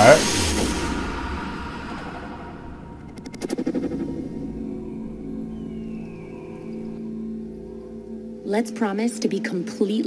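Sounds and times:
low drone: 0.0 - 8.8.

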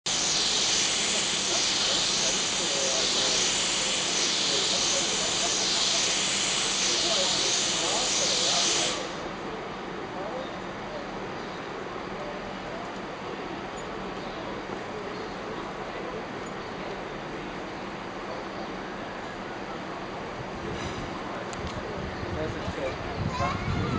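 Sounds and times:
steam hissing from locomotive: 0.1 - 9.8
train rumble in tunnel: 0.1 - 23.9.

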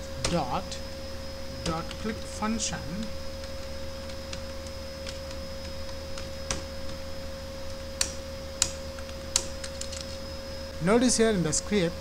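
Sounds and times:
electrical hum: 0.0 - 12.0
keyboard typing: 3.4 - 7.0.

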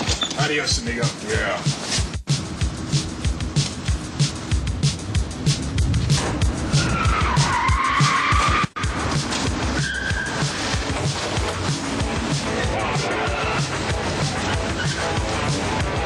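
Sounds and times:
music with drum beat: 0.4 - 16.0
car tyres squealing: 6.0 - 16.0.

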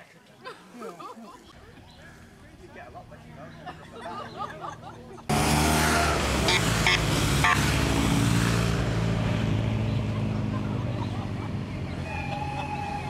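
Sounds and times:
motorcycles passing: 1.5 - 13.0.

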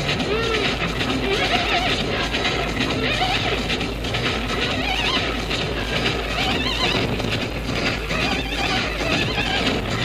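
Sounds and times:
high-pitched squeals: 0.1 - 10.0.

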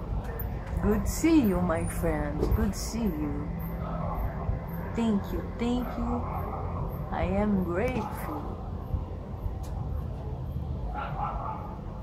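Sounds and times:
steady low rumble: 0.0 - 12.0
dog barking: 10.9 - 11.8.

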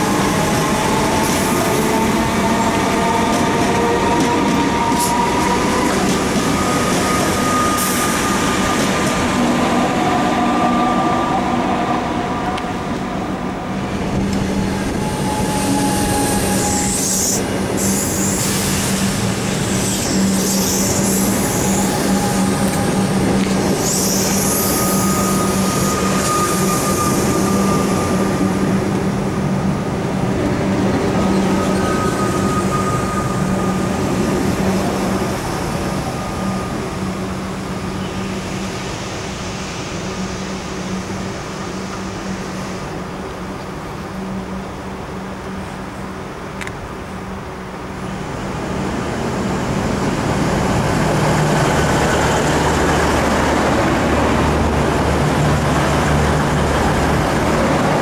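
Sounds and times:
electrical hum of train: 0.0 - 58.0
wheel and rail noise: 0.0 - 58.0
hiss: 16.2 - 28.3.

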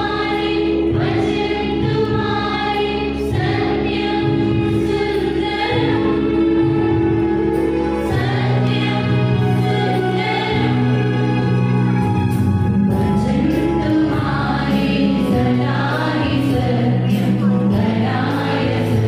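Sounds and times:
choir singing a hymn: 0.0 - 19.0
sustained accompaniment chords: 0.0 - 19.0.

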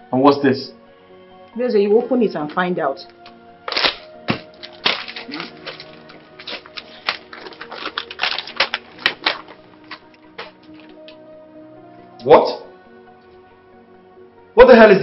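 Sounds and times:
background music with sustained tones: 0.0 - 15.0
envelope tearing: 3.7 - 11.2
paper crackling and rustling: 3.7 - 11.2.

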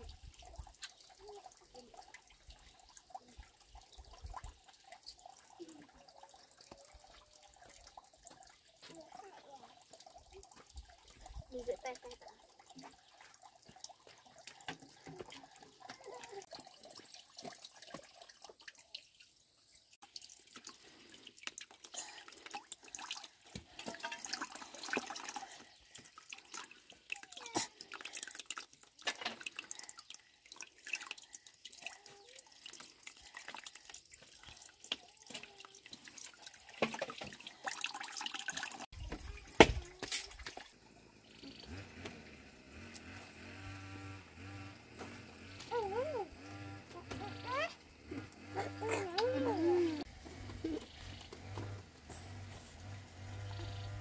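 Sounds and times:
water drips: 0.0 - 42.2, 45.0 - 53.8
water running into plastic basin: 0.0 - 54.0.

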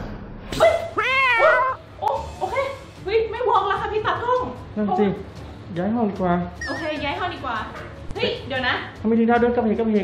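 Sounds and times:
cat yowling: 0.6 - 1.8.

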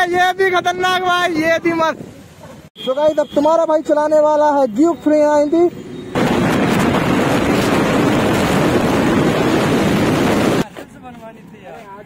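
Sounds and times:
wind buffeting microphone: 6.2 - 10.6.

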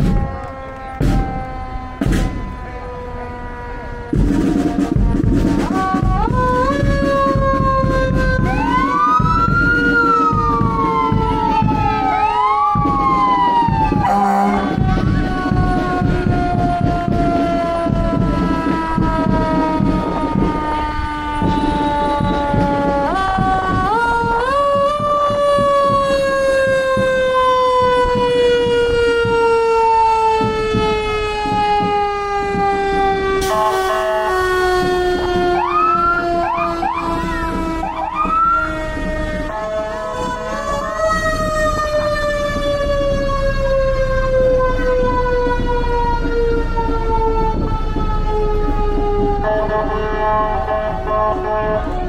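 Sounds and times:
fire truck siren wailing: 0.0 - 52.0
truck engines running: 0.0 - 52.0
short rising siren whoops: 32.8 - 41.9.

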